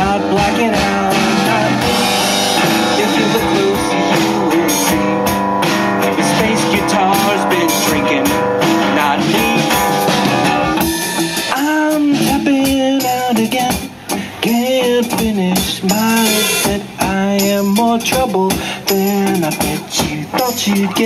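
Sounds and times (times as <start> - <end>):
amplified acoustic bass guitar: 0.0 - 21.0
drum kit and cymbals: 0.0 - 21.0.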